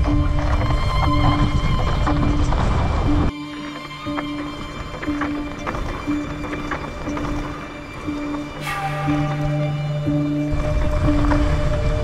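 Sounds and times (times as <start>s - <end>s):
low sustained chord: 7.2s - 12.0s.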